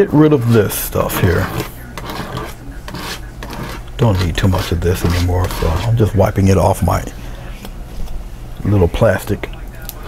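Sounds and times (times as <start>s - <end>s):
palette knife scraping plastic wrap: 1.0s - 6.0s.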